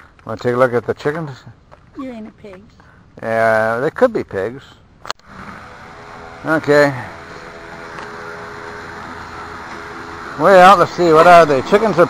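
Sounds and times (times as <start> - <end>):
steady mechanical hum: 4.9 - 12.0.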